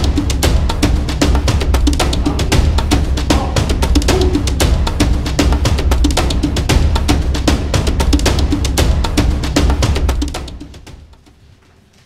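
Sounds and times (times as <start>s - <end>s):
deep bass: 0.0s - 10.4s
fast heavy drums and percussion: 0.0s - 11.4s.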